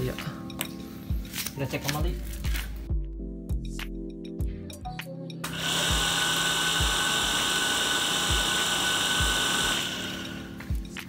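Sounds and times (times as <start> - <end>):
water pump whirring and whining: 5.4 - 10.8.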